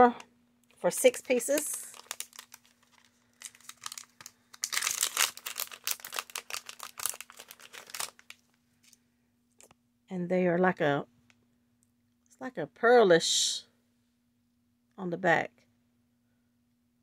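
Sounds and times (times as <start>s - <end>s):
plastic bag crinkling: 0.8s - 9.0s.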